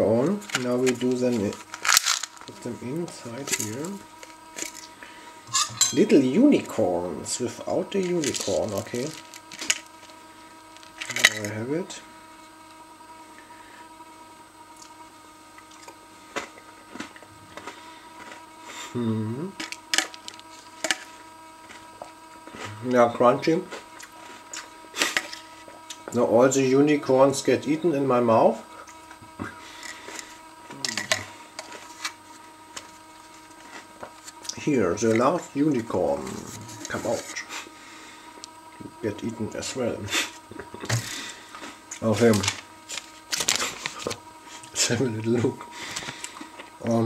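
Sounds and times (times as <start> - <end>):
crunchy cereal being chewed: 0.4 - 5.0, 7.9 - 11.5, 15.6 - 18.8, 23.6 - 26.0.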